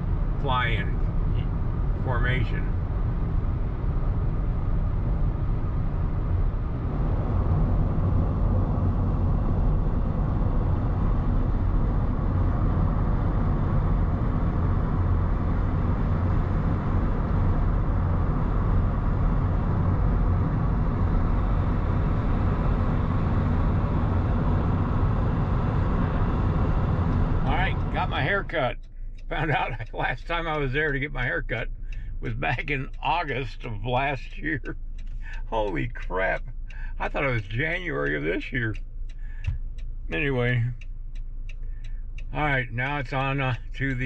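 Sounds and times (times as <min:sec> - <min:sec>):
car engine humming: 0:00.0 - 0:44.0.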